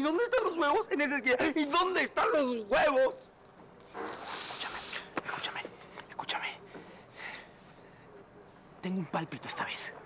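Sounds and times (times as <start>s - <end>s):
man whispering: 3.9s - 10.0s.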